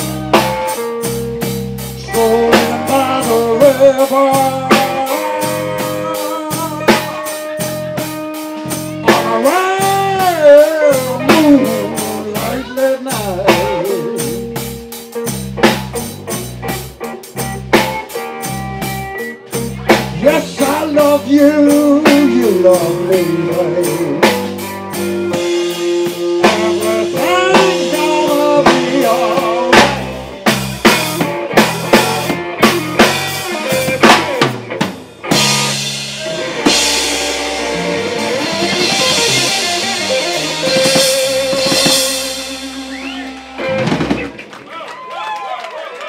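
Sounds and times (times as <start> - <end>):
live rock band playing: 0.0 - 45.1.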